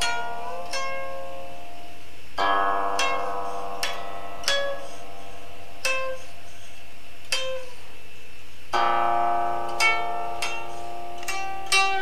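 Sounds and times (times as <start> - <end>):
plucked zither notes: 0.0 - 12.0.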